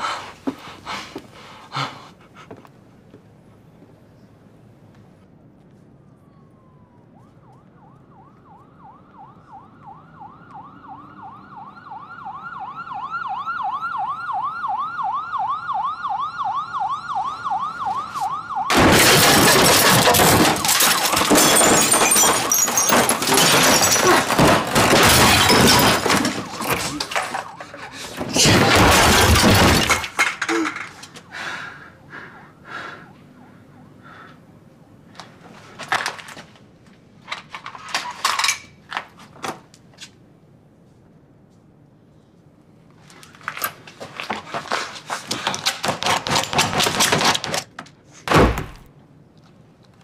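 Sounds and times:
glass shattering: 18.7 - 27.5, 28.2 - 30.8
objects crashing: 18.7 - 31.0.

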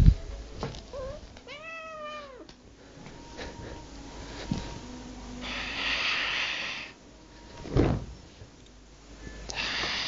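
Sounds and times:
cat meowing: 0.9 - 2.5.

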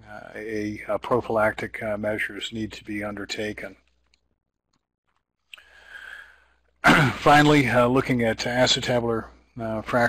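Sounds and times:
man breathing in softly: 5.6 - 6.7
man clearing his throat: 6.8 - 7.3.

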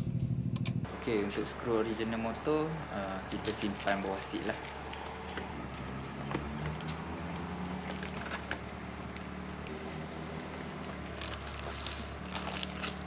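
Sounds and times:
steady low hum: 0.0 - 13.0
plastic bag rustling: 11.1 - 13.0.

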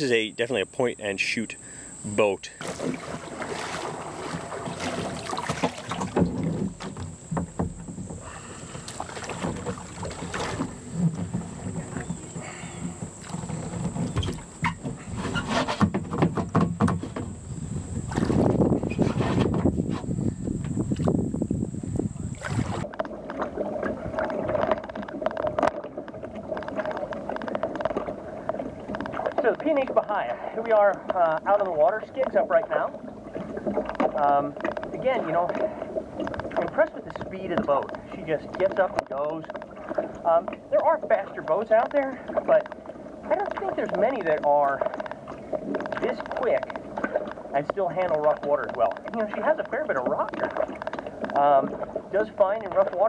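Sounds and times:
paddle splashing: 0.0 - 53.0
water washing against hull: 0.0 - 53.0.

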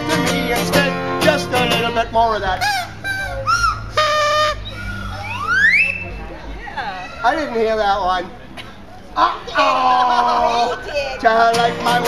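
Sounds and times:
short comic hoot: 2.6 - 5.8
whistle sliding up in pitch: 2.6 - 6.2.

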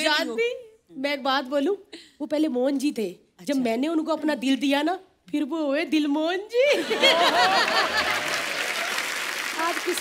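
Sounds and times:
studio audience applauding: 7.2 - 10.0.

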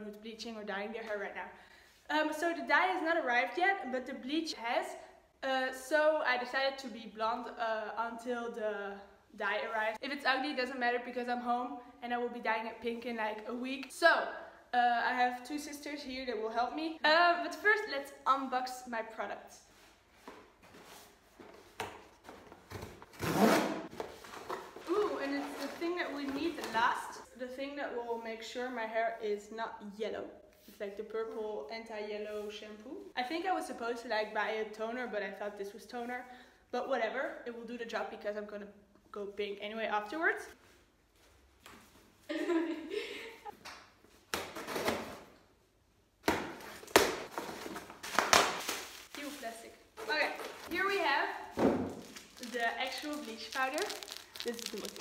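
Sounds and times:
person speaking: 49.1 - 55.0
cardboard ripping: 51.9 - 55.0.

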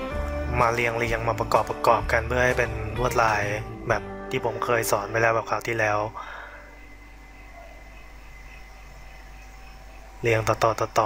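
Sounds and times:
low hum and hiss: 0.0 - 11.0
faint high whine: 2.5 - 11.0.

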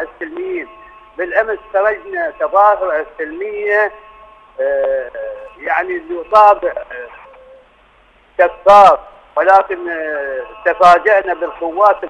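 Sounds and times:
man speaking over telephone: 0.0 - 4.0, 4.6 - 7.6, 8.4 - 12.0
faint telephone line noise: 0.0 - 12.0.

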